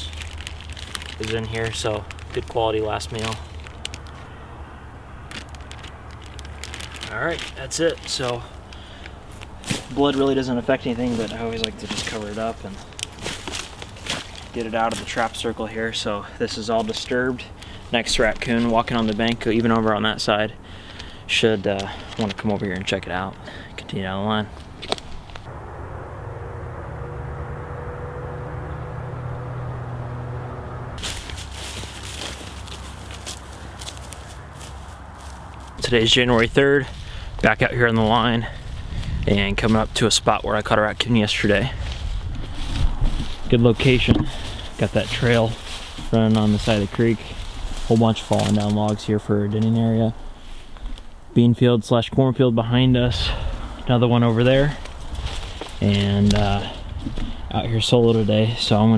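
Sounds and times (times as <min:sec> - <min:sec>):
plastic bag crinkling: 0:00.0 - 0:04.3, 0:05.2 - 0:15.6, 0:31.0 - 0:35.8
footsteps crunching through dry grass: 0:00.0 - 0:23.4, 0:31.0 - 0:49.2, 0:53.3 - 0:58.9
low hum: 0:25.2 - 0:36.1
low steady rumble: 0:25.2 - 0:58.9.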